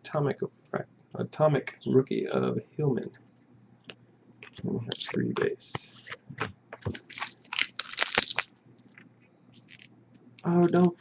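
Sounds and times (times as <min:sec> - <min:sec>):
foil wrapper crinkling: 0:06.8 - 0:08.5, 0:09.5 - 0:09.9.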